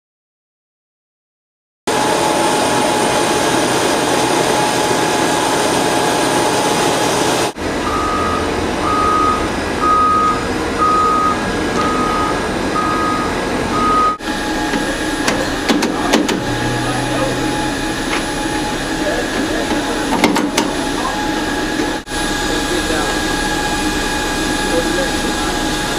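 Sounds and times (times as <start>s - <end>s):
low hum: 1.9s - 25.9s
machine drone with whine: 1.9s - 25.9s
reversing alarm beeping: 1.9s - 25.9s
vehicle engine: 1.9s - 25.9s.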